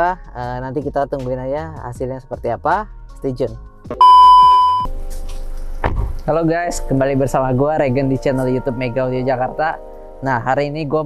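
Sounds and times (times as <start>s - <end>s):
test-tone beep: 4.0s - 4.9s.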